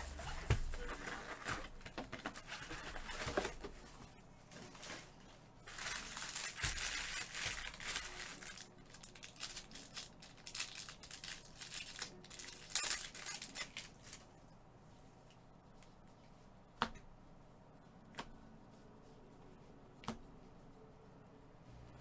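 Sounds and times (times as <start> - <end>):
card packs crinkling: 4.8 - 14.3.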